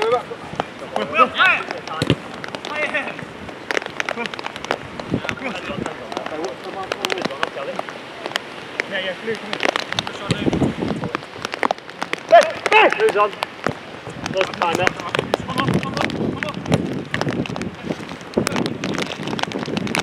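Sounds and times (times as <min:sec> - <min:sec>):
boots and ball knocking: 0:01.6 - 0:08.9, 0:09.5 - 0:20.0
players shouting: 0:12.2 - 0:13.4.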